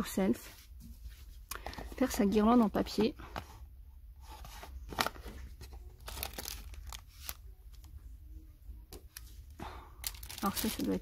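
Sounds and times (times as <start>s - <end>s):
plastic wrapping crinkling: 4.9s - 7.8s, 10.0s - 11.0s.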